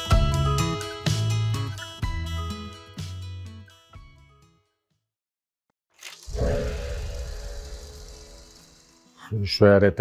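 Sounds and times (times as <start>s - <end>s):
sudden swoosh: 6.2s - 8.9s.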